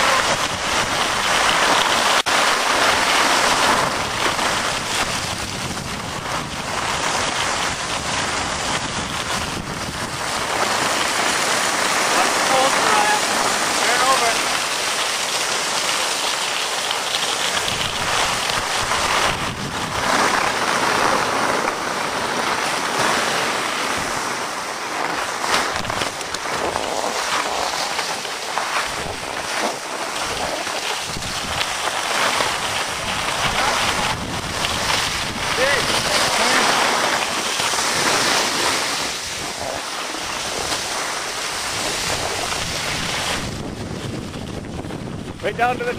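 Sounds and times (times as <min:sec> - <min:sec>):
wind on microphone: 0:00.0 - 0:14.6, 0:17.4 - 0:45.9
skis scraping over snow: 0:00.0 - 0:45.9.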